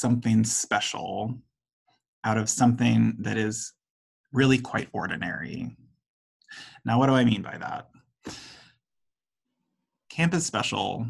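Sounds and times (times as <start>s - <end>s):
man breathing close to microphone: 8.2s - 8.8s.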